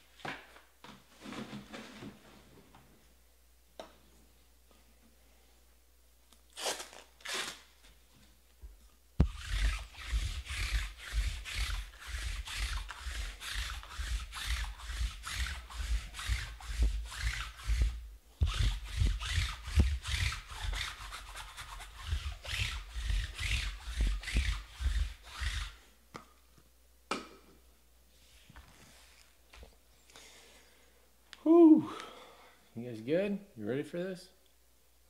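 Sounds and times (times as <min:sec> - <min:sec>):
roller rubbing over mat: 0:09.2 - 0:25.8.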